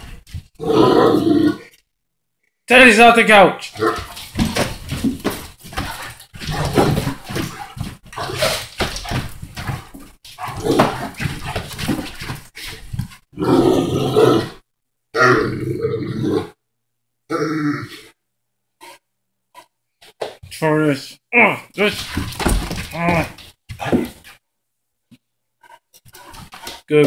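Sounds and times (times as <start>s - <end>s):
dog grunting and grumbling: 3.6s - 4.6s, 5.2s - 16.6s, 17.3s - 18.2s
dog thrashing on cushions: 3.8s - 13.2s, 22.0s - 24.2s
dog groaning: 5.8s - 12.5s.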